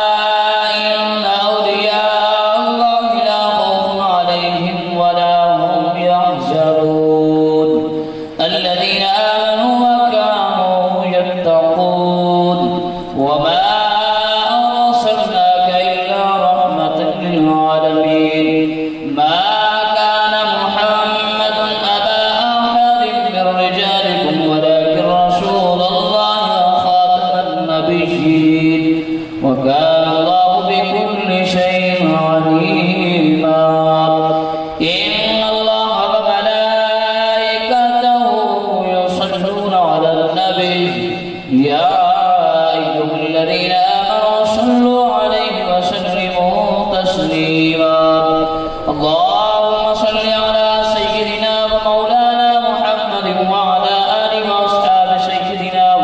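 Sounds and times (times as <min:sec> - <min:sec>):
man singing into a microphone: 0:00.0 - 0:56.0.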